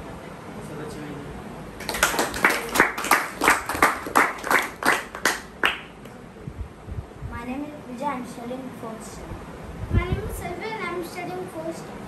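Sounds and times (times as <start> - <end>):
hands clapping: 1.8 - 6.2.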